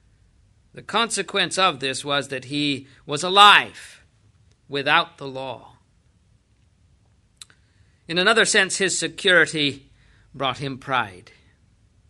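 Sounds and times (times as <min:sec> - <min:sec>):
faint mouth click: 0:07.4 - 0:07.6.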